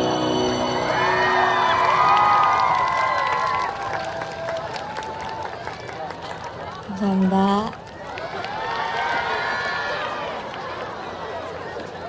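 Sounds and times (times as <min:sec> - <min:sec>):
crowd cheering and screaming: 0:00.0 - 0:06.3, 0:08.0 - 0:11.7.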